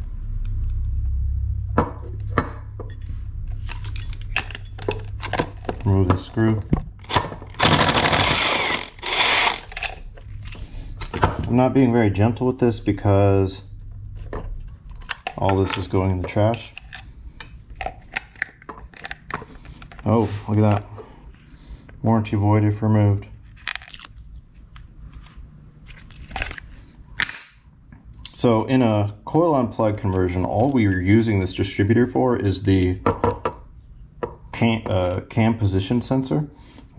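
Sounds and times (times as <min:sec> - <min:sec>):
tool and parts clicking: 0:06.7 - 0:10.1
cordless drill spinning out screw: 0:07.5 - 0:09.9.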